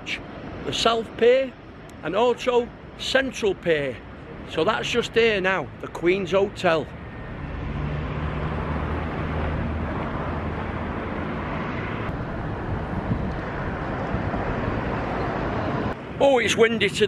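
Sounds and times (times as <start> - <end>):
wind buffeting microphone: 9.4 - 17.0.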